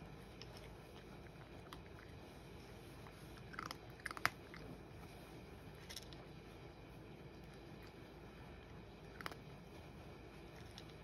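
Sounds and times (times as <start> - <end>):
cat crunching dry kibble: 0.3 - 5.0, 5.6 - 6.4, 8.9 - 9.6, 10.4 - 11.0.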